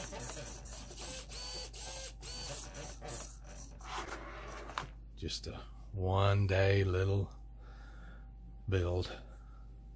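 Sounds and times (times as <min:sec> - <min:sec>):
small servos whirring: 0:00.0 - 0:04.9.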